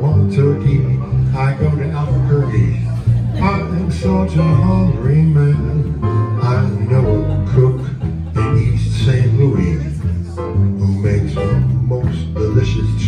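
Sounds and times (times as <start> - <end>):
jazz piano: 0.0 - 13.0
man singing into microphone: 0.0 - 13.0
upright bass line: 0.0 - 13.0.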